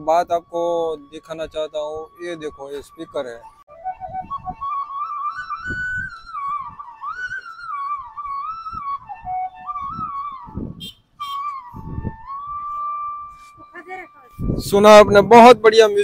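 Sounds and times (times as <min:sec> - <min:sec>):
flute melody from small speaker: 0:00.4 - 0:15.6.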